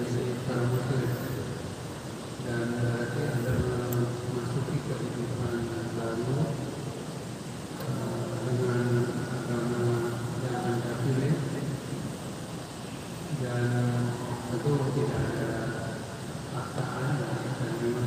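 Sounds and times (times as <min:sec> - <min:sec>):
man speaking: 0:00.0 - 0:01.6, 0:02.4 - 0:06.7, 0:07.8 - 0:11.7, 0:13.3 - 0:18.0
low steady hum: 0:00.0 - 0:18.0.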